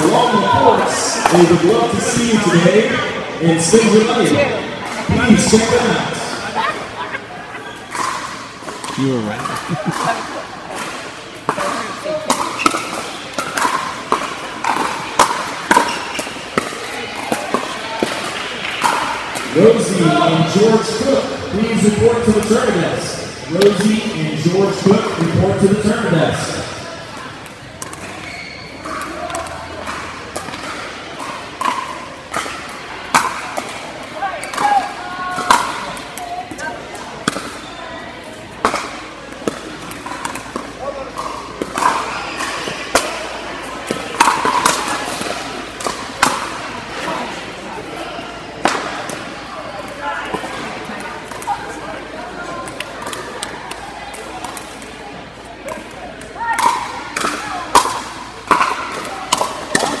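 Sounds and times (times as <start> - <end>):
chatter in indoor hall: 0.0 - 60.0.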